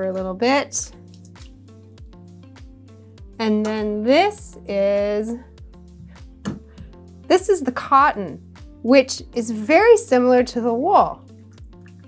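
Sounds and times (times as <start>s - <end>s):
soft music with steady beat: 0.0s - 12.0s
liquid dripping into pot: 0.9s - 2.2s, 11.3s - 12.0s.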